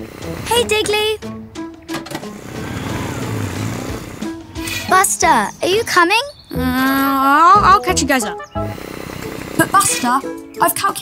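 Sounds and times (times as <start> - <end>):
road noise: 0.0 - 10.6
cartoon motor hum: 2.4 - 4.8.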